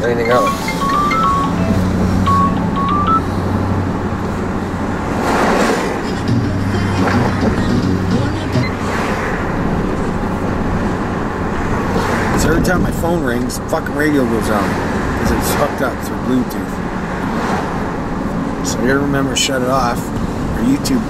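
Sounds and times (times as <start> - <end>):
music from car radio: 0.0 - 3.4, 6.0 - 8.9
car engine and road noise: 0.0 - 21.0
short run of high notes: 0.2 - 3.4.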